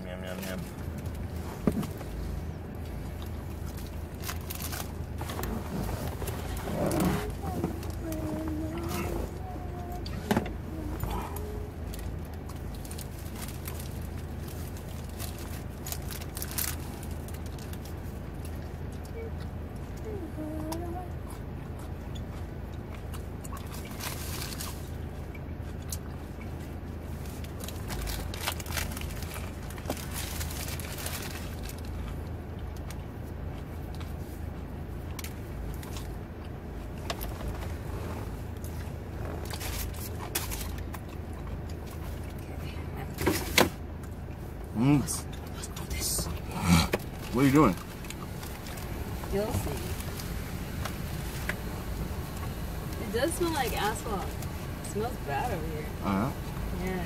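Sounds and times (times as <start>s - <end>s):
steady low hum: 0.0s - 57.0s
paper wrapper crinkling: 3.7s - 6.6s, 11.9s - 18.1s, 27.2s - 32.1s
short hummed sounds: 5.3s - 12.0s.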